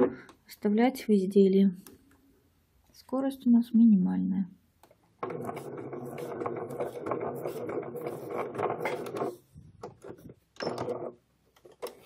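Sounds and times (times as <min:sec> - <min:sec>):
sewing machine stitching: 0:05.2 - 0:11.2.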